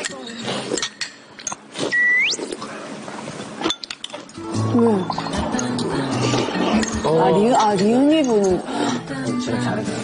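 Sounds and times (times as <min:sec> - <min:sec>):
rising whistle sound effect: 0:02.0 - 0:02.4
background music with melody: 0:04.4 - 0:10.0
spoons clinking on ceramic bowls: 0:05.0 - 0:09.0.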